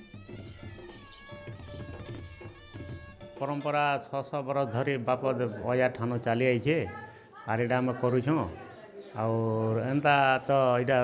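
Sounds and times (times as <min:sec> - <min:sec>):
drums beating a rhythm: 0:00.0 - 0:03.8.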